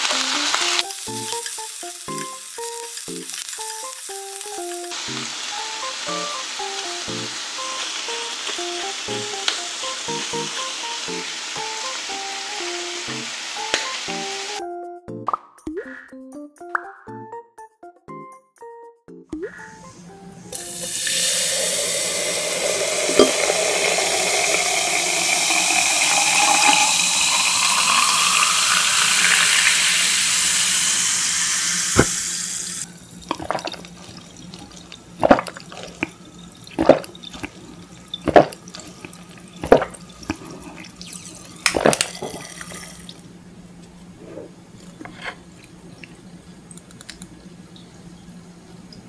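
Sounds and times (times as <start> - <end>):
drink pouring and fizzing: 0.0 - 14.4, 20.6 - 43.3
swallowing sounds: 33.3 - 41.0.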